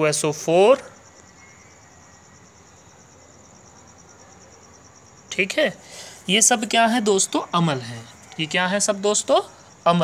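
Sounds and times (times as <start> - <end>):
crickets chirping: 0.0 - 10.0
low background hiss: 0.0 - 10.0.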